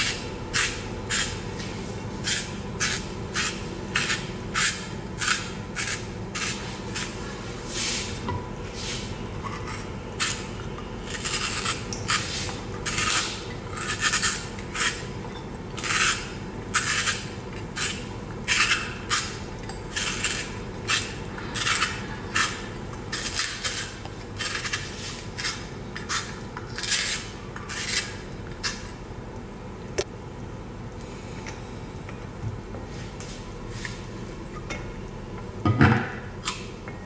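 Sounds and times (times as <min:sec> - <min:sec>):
spiral slicer scraping carrot: 0:00.0 - 0:08.2, 0:08.8 - 0:15.1, 0:15.8 - 0:28.9.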